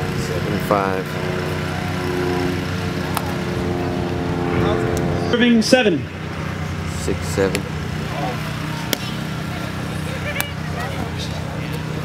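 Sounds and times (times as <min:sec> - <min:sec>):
faint voices: 0:00.0 - 0:12.0
steady low hum: 0:00.0 - 0:12.0.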